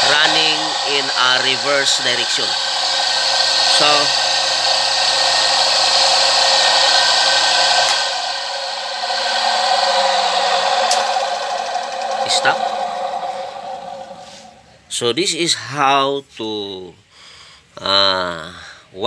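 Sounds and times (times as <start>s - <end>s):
electric motor humming: 0.0s - 14.6s
sharp clicks from motor: 7.8s - 8.1s.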